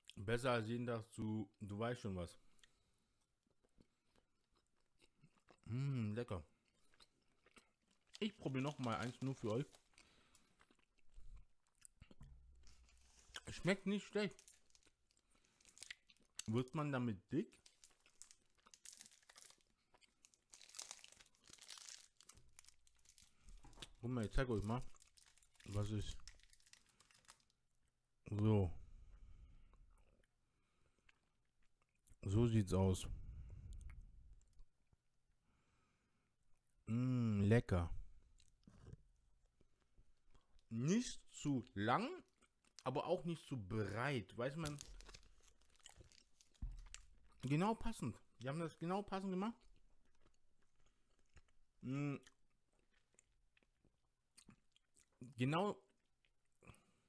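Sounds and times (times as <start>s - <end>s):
chewing with crackly clicks: 2.5s - 5.7s, 6.5s - 13.5s, 49.6s - 56.9s
wrapper crinkling and rustling: 8.2s - 10.2s, 12.6s - 16.7s, 17.5s - 27.6s, 44.5s - 47.6s.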